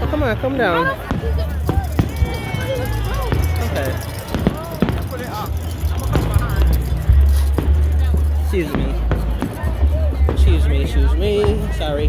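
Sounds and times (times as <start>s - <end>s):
voices close by: 0.0s - 12.0s
heavy low bass: 1.0s - 12.0s.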